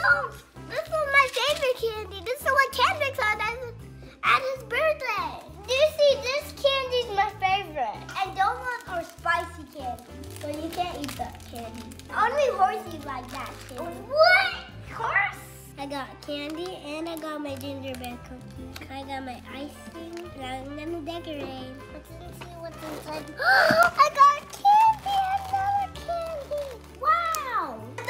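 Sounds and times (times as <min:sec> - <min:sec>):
young children's voices: 0:00.0 - 0:28.0.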